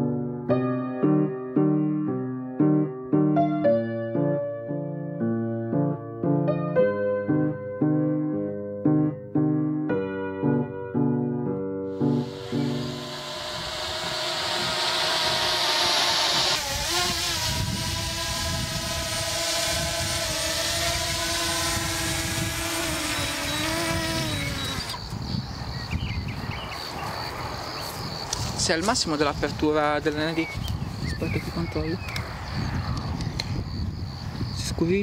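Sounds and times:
piano music: 0.0s - 15.9s
drone propellers buzzing whine: 12.0s - 25.1s
rush of air noise: 12.0s - 25.5s.

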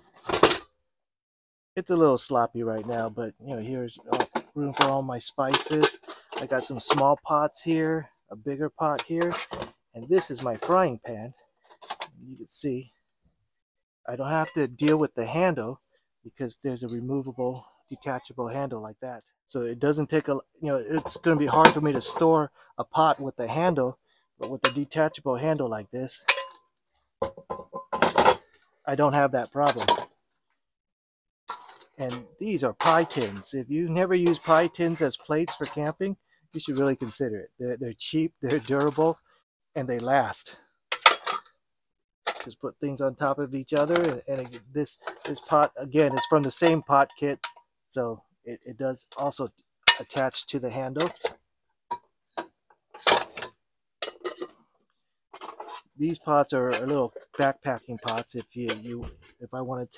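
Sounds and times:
metal pots clinking: 14.4s - 14.8s, 24.4s - 25.0s, 26.2s - 26.6s, 27.2s - 28.5s, 44.0s - 47.6s, 52.9s - 54.6s, 56.7s - 59.0s
frying pan clattering in a box: 26.2s - 26.6s, 27.2s - 28.5s.

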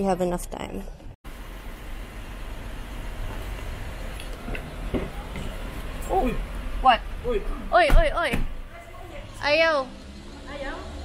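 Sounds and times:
car interior rumble: 1.3s - 9.6s.

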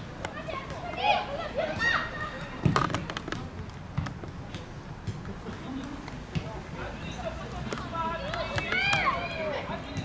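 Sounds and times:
children shouting: 0.4s - 2.6s, 8.3s - 9.6s.

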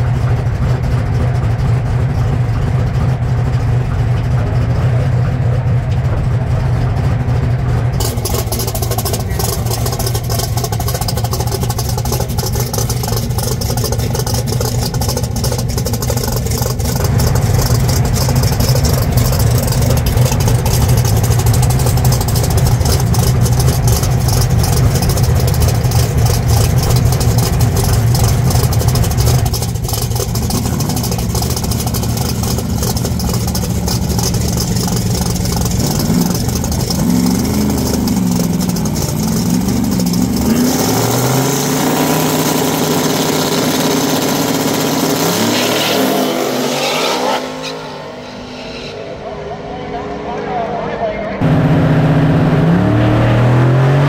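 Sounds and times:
race car engine revving: 0.0s - 54.0s.

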